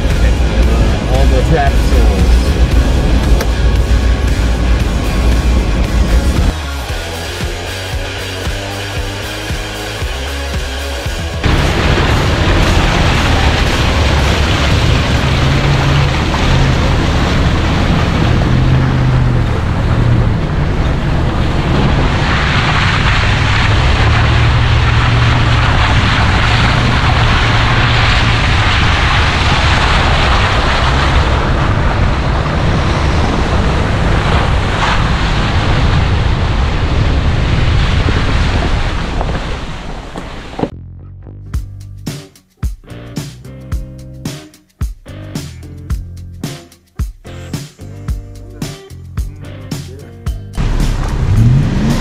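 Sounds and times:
vehicle driving on dirt trail: 0.0s - 41.6s, 49.2s - 52.0s
low engine and road rumble: 0.0s - 42.1s, 47.3s - 52.0s.

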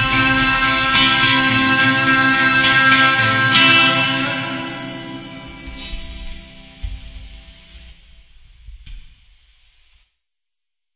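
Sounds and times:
acoustic guitar chord ringing: 0.0s - 7.2s
steady hiss: 0.0s - 10.3s.

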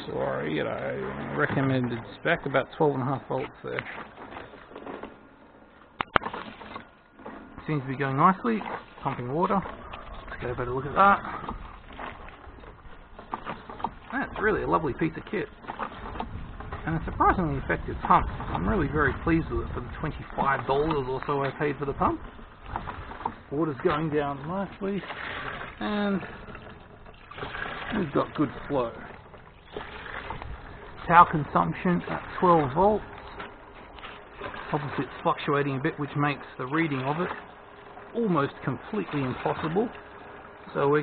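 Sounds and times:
diaphragm pump pumping water: 0.0s - 41.0s
water pouring into plastic tub: 23.8s - 29.0s, 29.6s - 33.3s.

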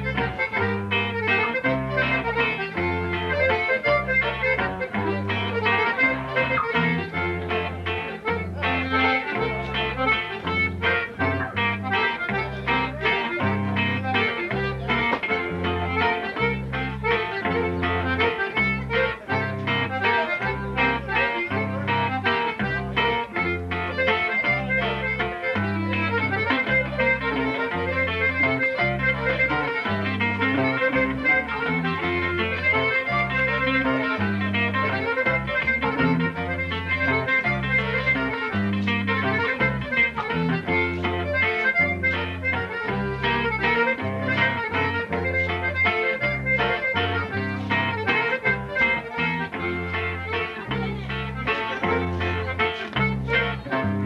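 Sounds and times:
button accordion melody: 0.0s - 54.0s
electric bass line: 0.0s - 54.0s
strummed bajo sexto: 0.0s - 54.0s.

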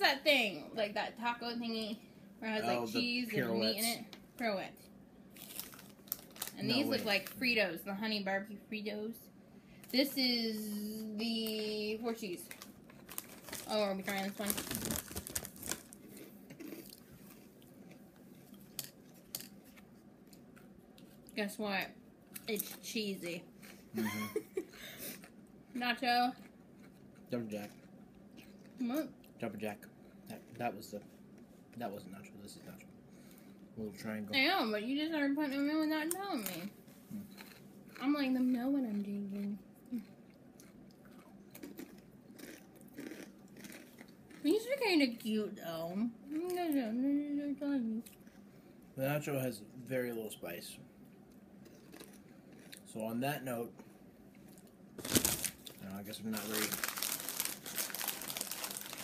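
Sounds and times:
crunching and chewing chips: 5.3s - 7.4s, 11.5s - 21.4s, 25.0s - 33.6s, 36.4s - 44.6s, 51.6s - 53.4s, 54.3s - 59.0s
tortilla chips clicking: 12.4s - 16.7s, 55.0s - 59.0s.

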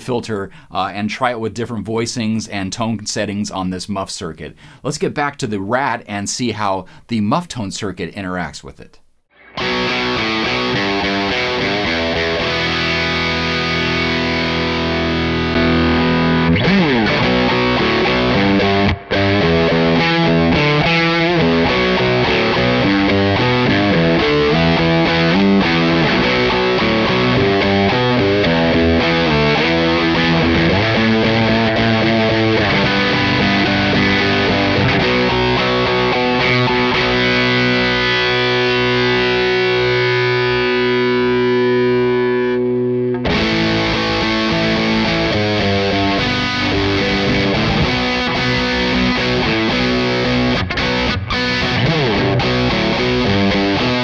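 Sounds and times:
distorted electric guitar: 9.3s - 54.0s.

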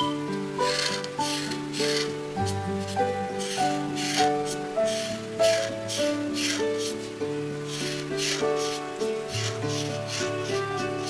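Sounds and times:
simple background melody: 0.0s - 11.0s
marker scratching on paper: 0.6s - 7.1s, 7.7s - 11.0s.

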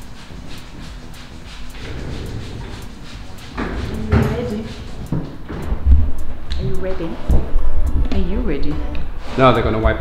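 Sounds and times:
high ticking beat: 0.0s - 9.2s
background music: 0.0s - 10.0s.

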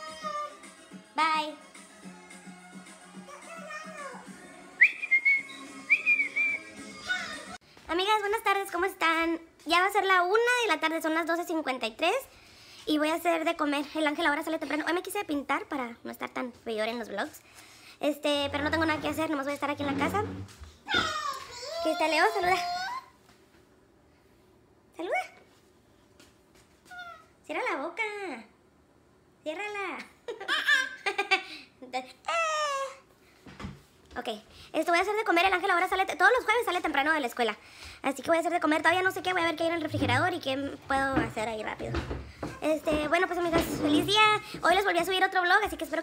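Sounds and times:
faint background music: 0.0s - 23.2s, 34.1s - 46.0s
person whistling notes: 4.8s - 6.8s
small boy yelping: 20.9s - 23.1s, 26.9s - 27.3s.

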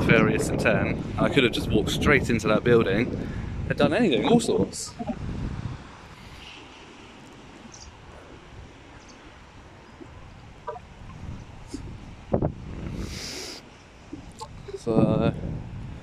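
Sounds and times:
low wind rumble on microphone: 0.0s - 16.0s
short hiss: 12.9s - 13.7s.

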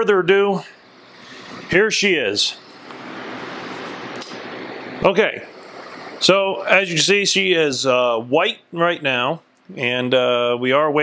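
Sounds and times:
steady rushing hiss: 0.6s - 8.0s.

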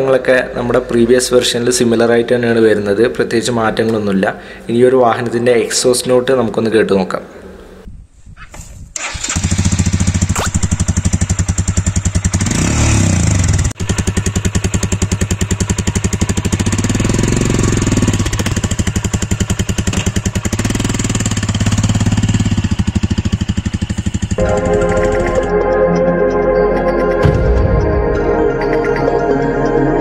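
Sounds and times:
motorcycle engine idling and revving: 9.0s - 25.8s
music: 24.4s - 30.0s.

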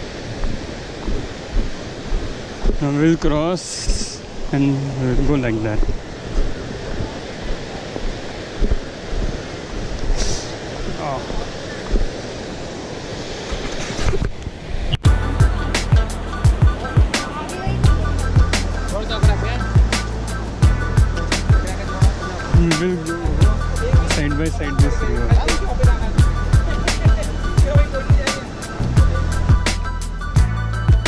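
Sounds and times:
music with beat and deep bass: 15.0s - 31.0s.

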